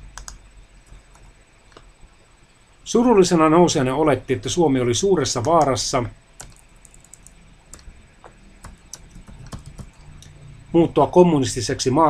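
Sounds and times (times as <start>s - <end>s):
keyboard keys clicking: 0.2s - 1.9s, 6.4s - 7.9s, 8.6s - 10.1s.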